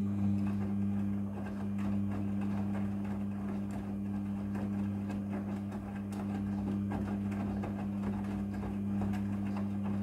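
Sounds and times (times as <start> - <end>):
washing machine motor humming: 0.0 - 10.0
wet clothes swishing and knocking: 0.4 - 10.0.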